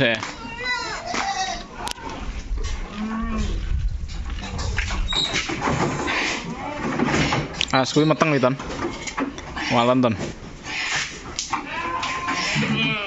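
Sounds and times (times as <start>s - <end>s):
goats bleating: 6.0s - 8.4s, 11.5s - 13.0s.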